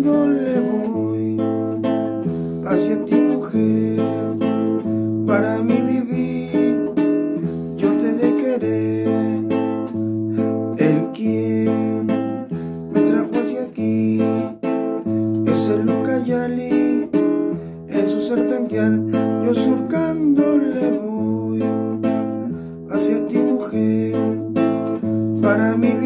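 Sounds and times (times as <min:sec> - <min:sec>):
classical guitar waltz: 0:00.0 - 0:26.0.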